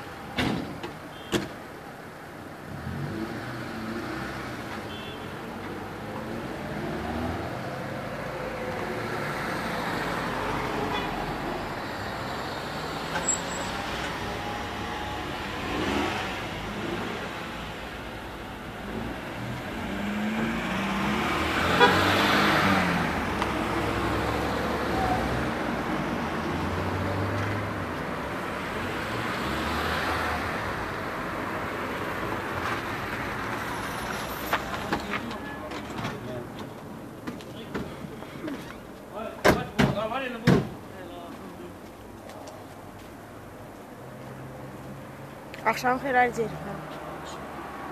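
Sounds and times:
car engine and tyre noise: 0.0 - 45.7, 46.5 - 47.9.

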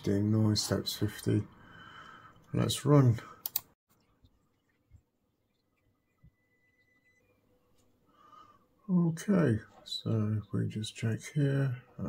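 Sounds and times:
computer mouse clicks: 3.4 - 3.7.

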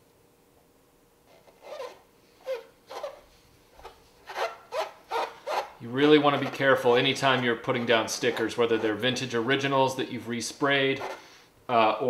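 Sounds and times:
fingertips rubbing sticker on plastic: 1.3 - 3.2, 3.8 - 9.2.

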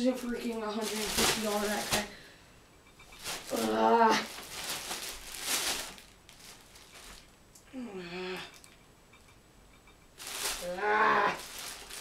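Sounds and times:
plastic bag crinkling: 0.0 - 2.3, 3.0 - 7.4, 10.2 - 12.0.

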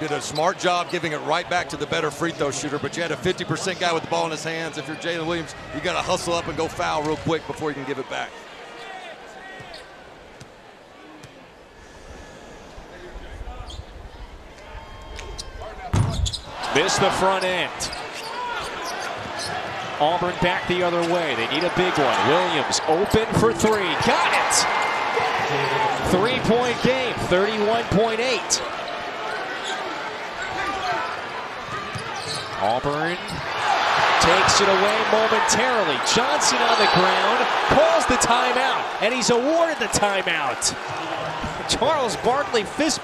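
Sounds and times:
sneaker squeaks: 8.8 - 9.9, 15.3 - 19.7, 28.9 - 33.5
arena crowd murmur: 16.6 - 43.0.

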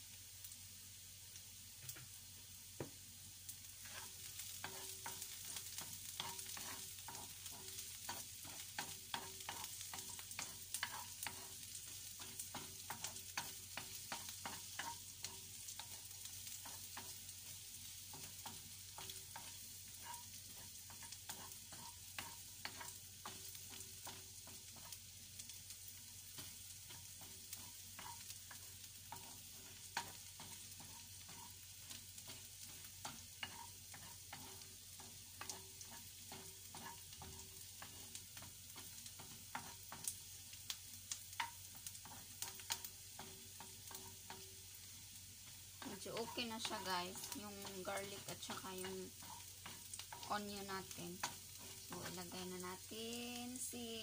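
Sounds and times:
onion sizzling in oil: 0.0 - 54.0
wooden spatula scraping pan: 3.8 - 40.3, 41.3 - 53.0.

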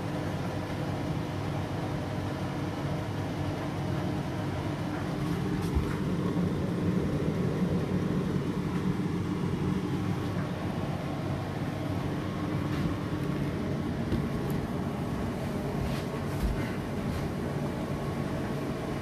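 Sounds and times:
washing machine spinning: 0.0 - 19.0.

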